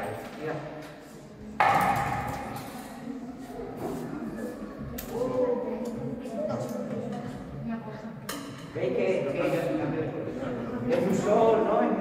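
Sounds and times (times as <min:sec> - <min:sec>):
children and adults talking: 0:01.0 - 0:12.0.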